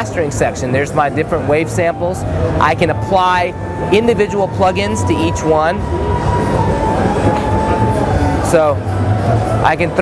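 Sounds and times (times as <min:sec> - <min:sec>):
pulsing bass: 0:00.0 - 0:10.0
trade show hall din: 0:00.0 - 0:10.0.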